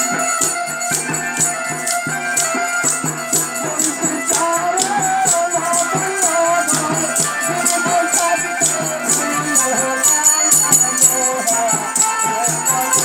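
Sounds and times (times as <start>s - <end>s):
drum beat: 0.0s - 13.0s
jingling hand percussion: 0.0s - 13.0s
man singing through a microphone: 2.6s - 13.0s.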